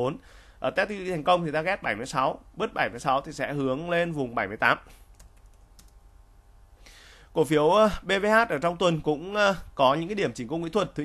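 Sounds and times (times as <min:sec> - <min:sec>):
faint steady hum: 0:00.0 - 0:11.0
keyboard keystroke clicks: 0:05.1 - 0:06.0.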